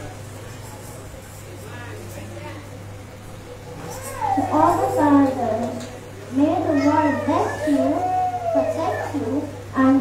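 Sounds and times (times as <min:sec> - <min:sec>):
low electrical hum: 0:00.0 - 0:10.0
girl speaking into a microphone: 0:04.0 - 0:10.0.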